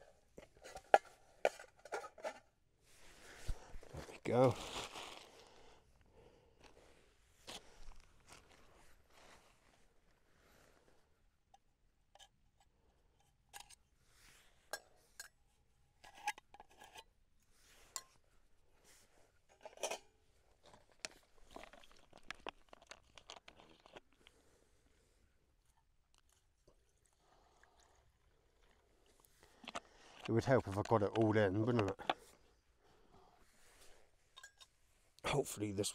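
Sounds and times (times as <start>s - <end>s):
camping gear clicks and rustles: 0.0s - 5.5s, 6.5s - 9.9s, 18.8s - 24.5s, 27.9s - 32.5s.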